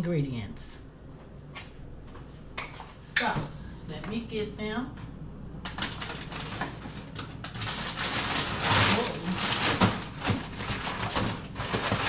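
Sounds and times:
kitchen items knocking and clattering: 5.7 - 12.0
rustling: 6.0 - 12.0.

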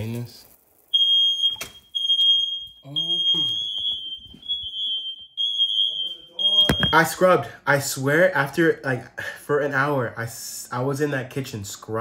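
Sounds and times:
smoke alarm beeping: 0.9 - 7.2.

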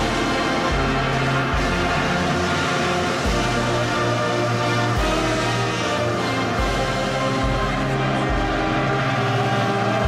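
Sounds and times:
orchestral anthem: 0.0 - 10.0.

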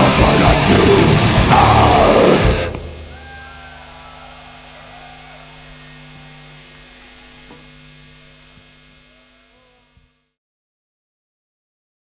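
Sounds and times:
faint crowd noise: 0.4 - 10.2
crowd shouts: 0.8 - 10.0
amplifier electrical hum: 0.8 - 10.4.

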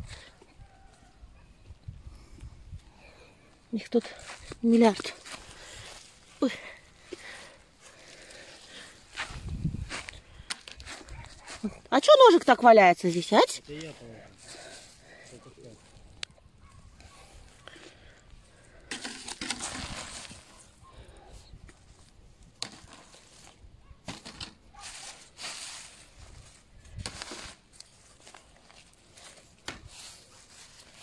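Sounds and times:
dry leaves rustling and crackling: 18.9 - 20.7, 21.9 - 31.0.

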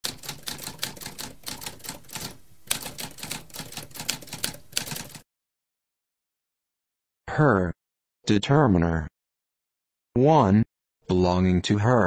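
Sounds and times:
typewriter keys clicking: 0.0 - 5.2.

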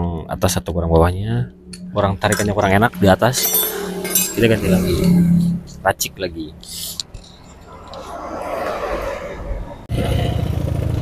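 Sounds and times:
rushing engine-like noise: 0.5 - 11.0.

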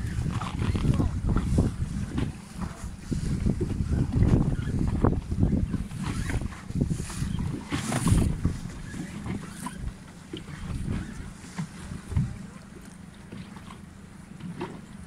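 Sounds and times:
wind buffeting microphone: 0.0 - 12.6
choppy water splashing: 0.0 - 15.0.

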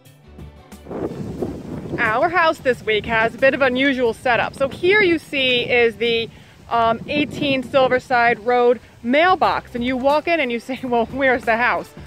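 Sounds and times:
soft instrumental music: 0.0 - 12.0
wind on a microphone: 0.8 - 12.0.

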